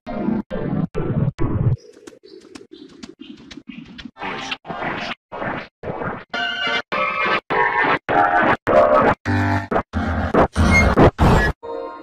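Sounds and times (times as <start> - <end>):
music: 8.7 - 12.0.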